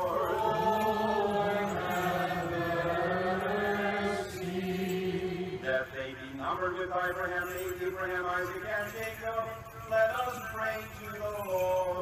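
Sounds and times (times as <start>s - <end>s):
voices chanting a slow melody: 0.0s - 6.0s.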